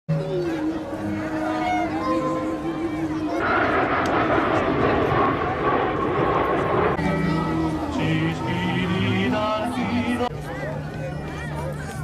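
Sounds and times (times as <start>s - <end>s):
jet aircraft flying past: 3.3s - 7.9s.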